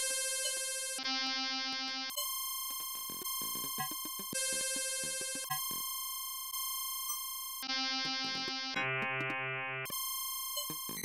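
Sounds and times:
steady high electronic tone: 0:02.2 - 0:07.3.

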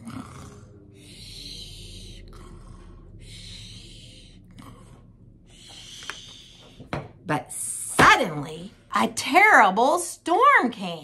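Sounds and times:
woman imitating snoring: 0:00.0 - 0:02.8.

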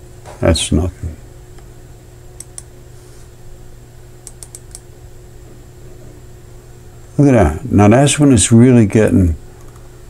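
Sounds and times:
steady low hum: 0:00.0 - 0:10.0
computer control clicks: 0:02.4 - 0:02.7, 0:04.2 - 0:04.9.

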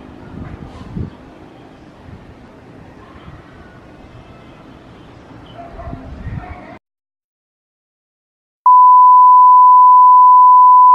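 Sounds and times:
sine test tone: 0:08.7 - 0:10.9.

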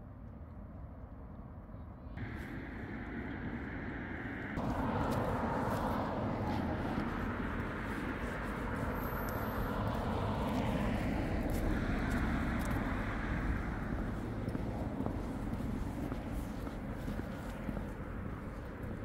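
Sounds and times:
road traffic rumble: 0:02.1 - 0:19.0.

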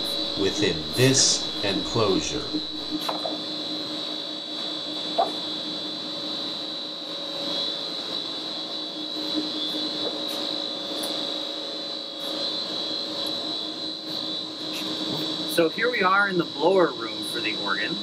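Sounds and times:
blower motor hum and whine: 0:00.0 - 0:18.0.

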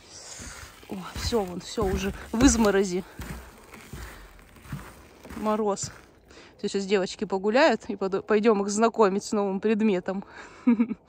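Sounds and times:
footsteps crunching on frosty ground: 0:00.0 - 0:06.5.

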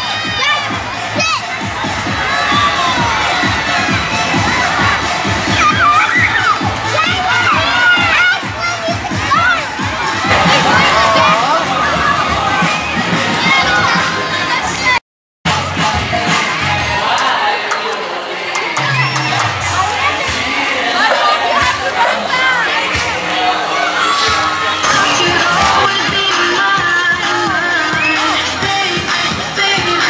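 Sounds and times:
children shouting and cheering: 0:00.0 - 0:30.0.

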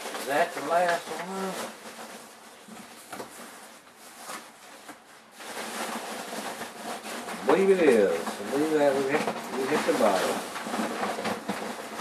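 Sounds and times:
rummaging in cardboard box: 0:00.0 - 0:12.0.

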